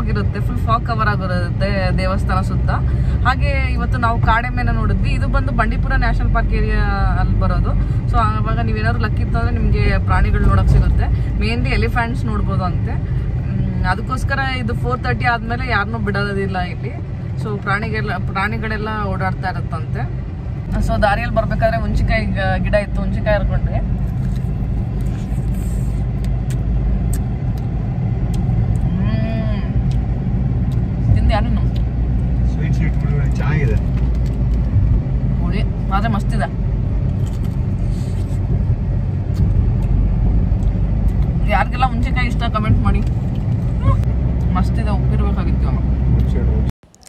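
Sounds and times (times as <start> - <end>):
car driving rumble inside cabin: 0.0 - 47.0.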